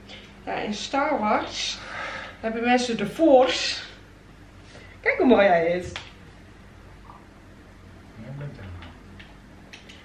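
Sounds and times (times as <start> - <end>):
low voiced hum: 3.6 - 10.0.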